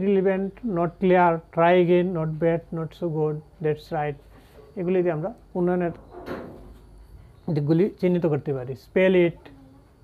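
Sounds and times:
man speaking: 0:00.0 - 0:06.0, 0:07.4 - 0:09.5.

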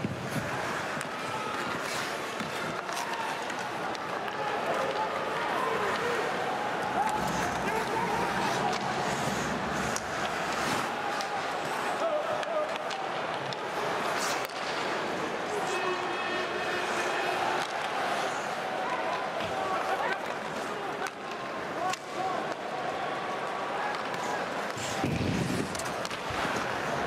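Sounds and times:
crowd voices din: 0:00.0 - 0:27.0.

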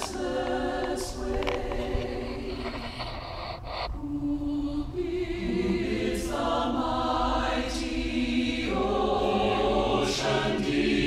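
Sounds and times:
choir singing held notes: 0:00.0 - 0:02.9, 0:04.0 - 0:11.0.

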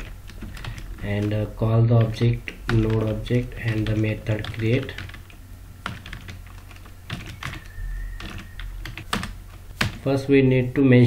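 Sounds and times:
keyboard typing: 0:00.0 - 0:10.1.

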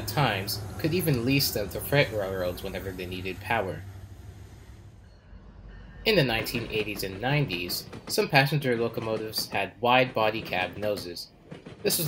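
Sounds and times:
diesel train low rumble: 0:00.0 - 0:12.0.

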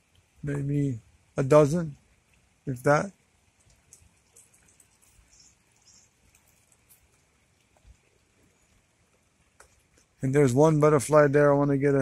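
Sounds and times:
soft ticks: 0:03.5 - 0:10.2.

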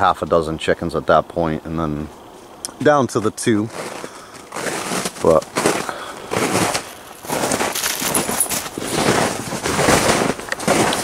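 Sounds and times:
footsteps crunching through snow: 0:03.4 - 0:11.0.

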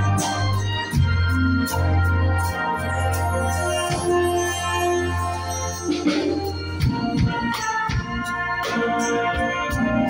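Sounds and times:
instrumental hymn music: 0:00.0 - 0:10.0.

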